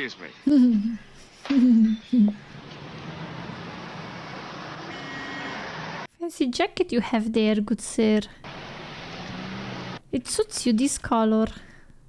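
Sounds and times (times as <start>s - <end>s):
city street traffic: 1.4s - 6.1s, 8.4s - 10.0s.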